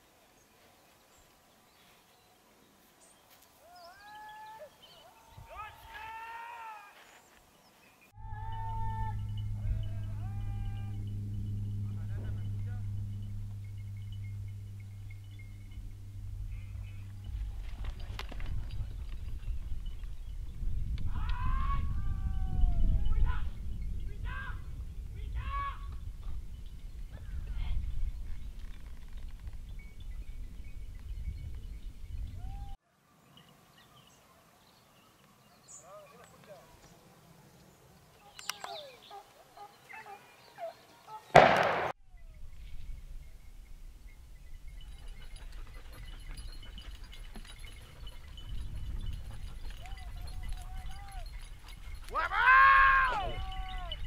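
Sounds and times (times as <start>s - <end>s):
steady low hum: 8.2s - 21.1s
wind rumble on microphone: 8.2s - 32.8s, 42.0s - 54.0s
hounds barking and yelping: 38.2s - 41.3s, 44.8s - 54.0s.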